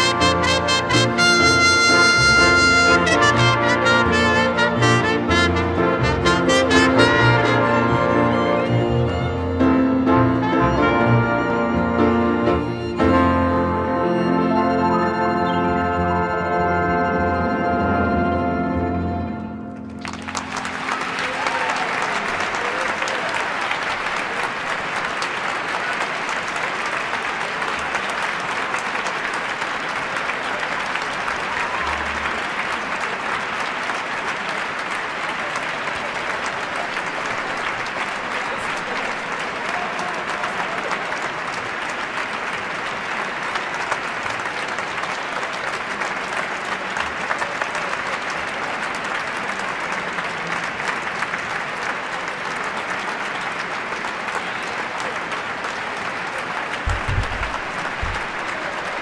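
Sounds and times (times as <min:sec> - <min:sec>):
audience applauding: 0:00.0 - 0:17.1, 0:17.8 - 0:59.0.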